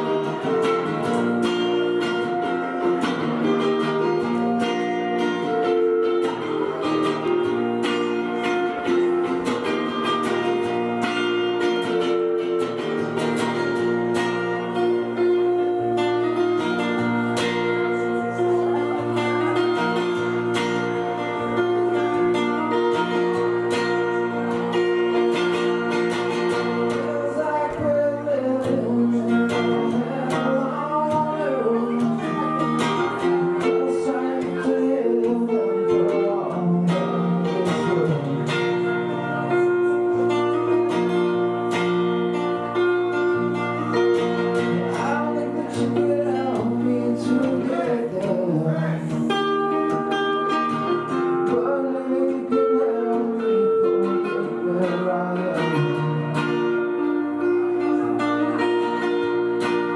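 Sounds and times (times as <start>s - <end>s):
acoustic guitar picked and strummed: 0.0s - 59.9s
man singing: 0.0s - 59.9s.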